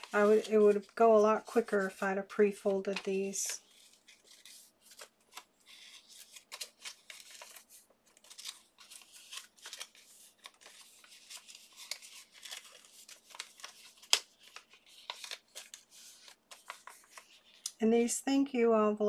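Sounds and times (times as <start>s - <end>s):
paper rustling and crackling: 0.0s - 17.7s.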